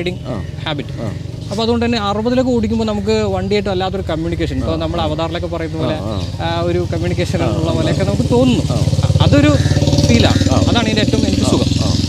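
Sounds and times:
men talking: 0.0 - 12.0
vehicle engine idling: 0.0 - 12.0.

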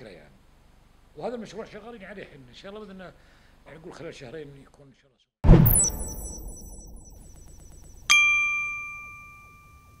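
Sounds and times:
bright bell-like chime: 5.6 - 10.0.

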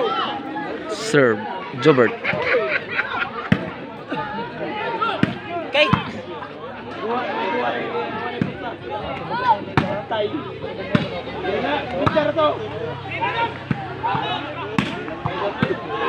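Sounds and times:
crowd talking and calling out: 0.0 - 16.0
ball being struck: 12.0 - 12.2, 14.8 - 15.8.

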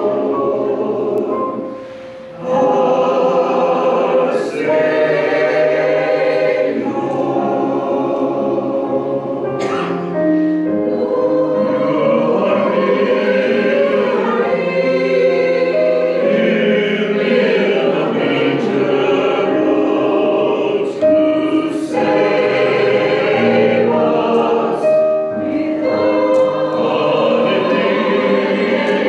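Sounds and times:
mixed choir singing in parts: 0.0 - 29.0.

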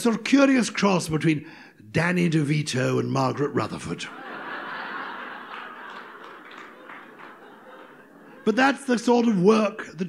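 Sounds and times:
audience laughing: 4.0 - 9.4.

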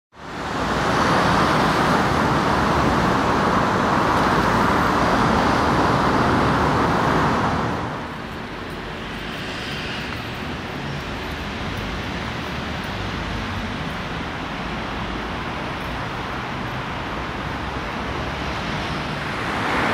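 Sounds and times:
road traffic roar: 0.1 - 19.9.

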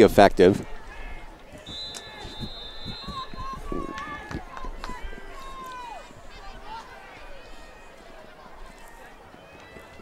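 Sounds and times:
crowd voices and shouts: 0.0 - 10.0.

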